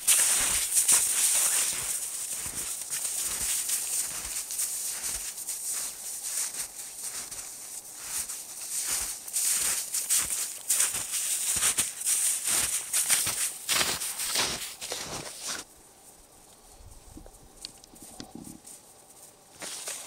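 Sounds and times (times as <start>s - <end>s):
snowshoes crunching in snow: 0.0s - 15.7s, 18.0s - 20.0s.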